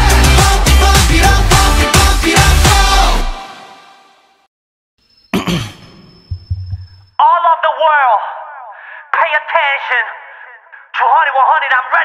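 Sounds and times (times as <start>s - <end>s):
pop song: 0.0s - 4.0s.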